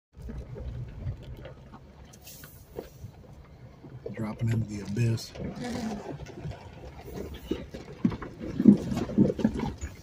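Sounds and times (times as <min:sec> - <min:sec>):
car engine low rumble: 0:00.1 - 0:10.0.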